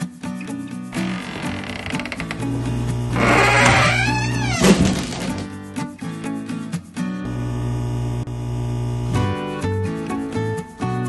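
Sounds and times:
background music: 0:00.0 - 0:07.4, 0:09.2 - 0:11.0
wooden gate doors creaking: 0:01.0 - 0:05.6.

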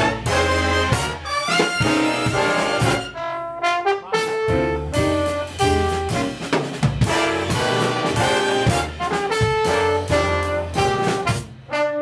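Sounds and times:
bass: 0:00.0 - 0:12.0
brass and saxophones: 0:00.0 - 0:12.0
drum kit: 0:00.0 - 0:12.0.

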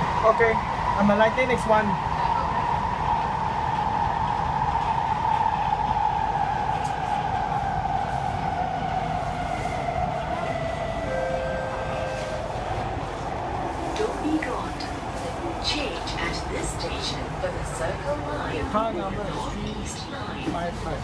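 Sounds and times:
rumble of train wheels: 0:00.0 - 0:21.0.

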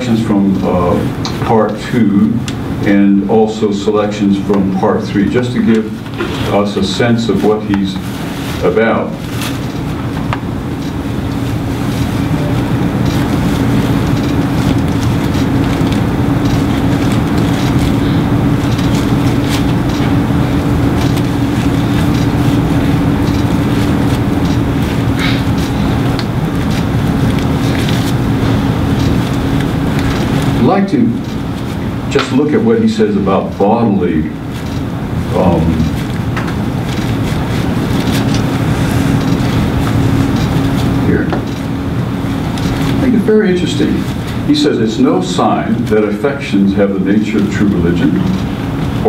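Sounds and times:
steady low hum: 0:00.0 - 0:49.0.

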